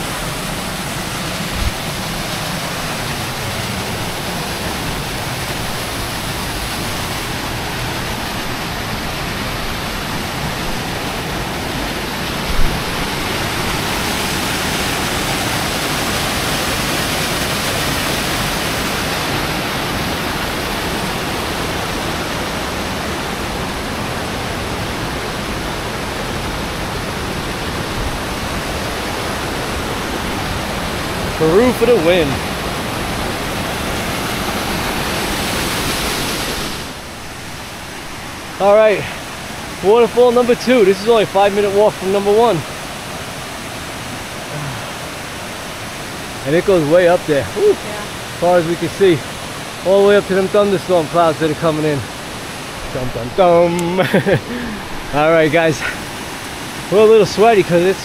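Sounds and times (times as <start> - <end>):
waterfall splashing into pool: 0.0 - 58.0.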